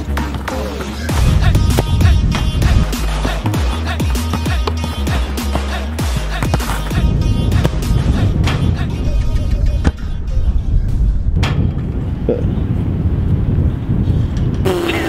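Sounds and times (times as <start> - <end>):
music with steady beat: 0.0 - 11.7.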